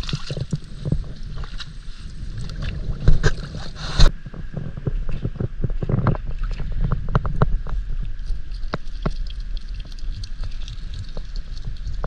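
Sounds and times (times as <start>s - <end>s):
water splashes: 0.0s - 4.1s, 5.0s - 12.0s
wind rumble on microphone: 0.0s - 12.0s.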